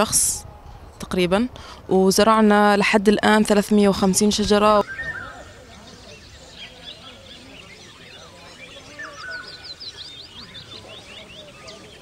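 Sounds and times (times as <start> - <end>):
faint distant voices: 0.0 - 12.0
small birds chirping: 3.2 - 12.0.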